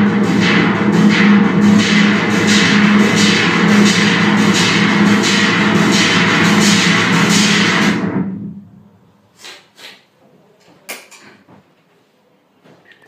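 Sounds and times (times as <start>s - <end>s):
bright pulsing synth pattern: 0.0s - 8.6s
synthesizer bass drone: 0.0s - 9.3s.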